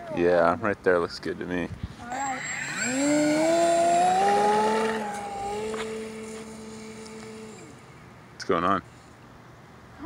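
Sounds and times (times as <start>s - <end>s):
model plane motor humming: 2.0s - 8.0s.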